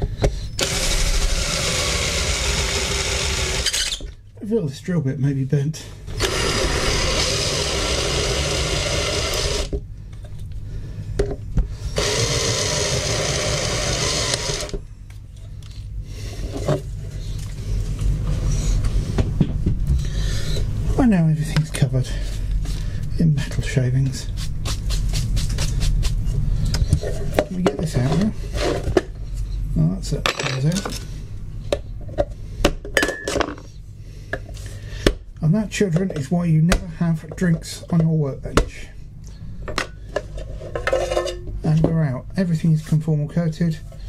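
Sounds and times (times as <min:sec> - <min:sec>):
cordless drill drilling metal: 0:00.6 - 0:04.0, 0:06.1 - 0:09.7, 0:12.0 - 0:14.8.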